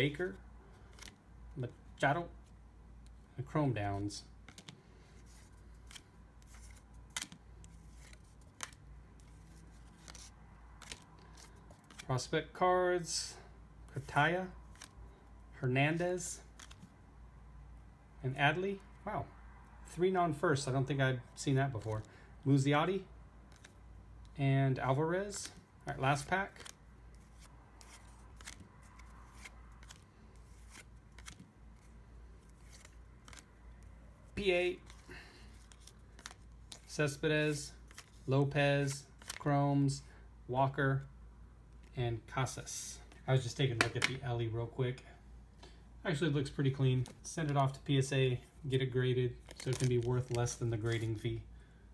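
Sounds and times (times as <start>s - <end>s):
cards sliding and clicking: 0.7s - 3.3s, 4.0s - 12.1s, 14.0s - 15.0s, 16.4s - 16.9s, 23.5s - 24.4s, 25.3s - 33.8s, 34.4s - 39.5s, 43.0s - 44.2s, 49.4s - 51.2s
trading cards snapping: 5.8s - 8.8s, 9.9s - 12.1s, 27.4s - 30.0s, 30.6s - 31.5s, 43.8s - 44.2s.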